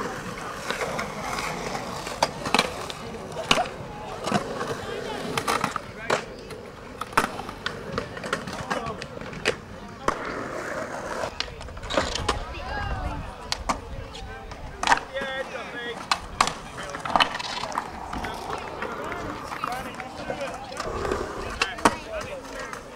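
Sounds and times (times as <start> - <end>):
skateboard wheels rolling: 0.0 - 22.9
skateboards clacking on concrete: 0.0 - 22.9.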